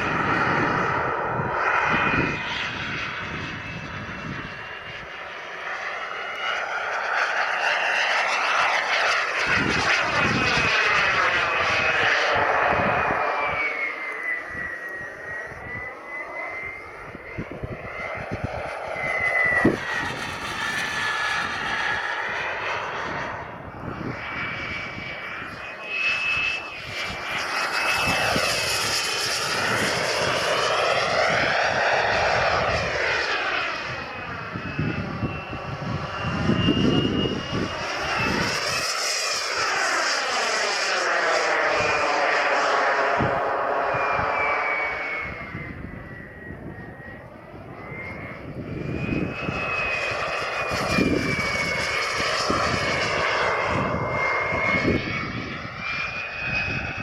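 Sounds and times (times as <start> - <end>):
model jet turbine whining: 0.0 - 57.0.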